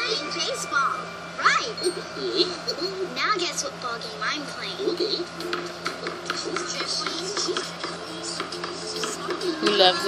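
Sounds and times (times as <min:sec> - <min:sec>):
children's tv music through television: 0:00.0 - 0:10.0.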